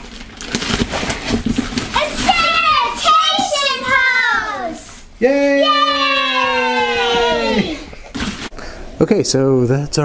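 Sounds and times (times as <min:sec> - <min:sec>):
paper wrapping tearing: 0:00.0 - 0:03.2.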